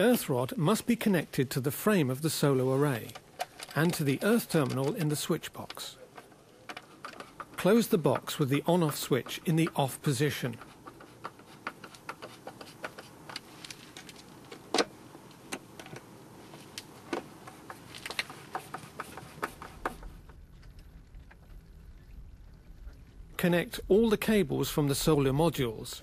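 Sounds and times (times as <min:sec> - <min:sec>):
low rumble: 0:20.3 - 0:25.5.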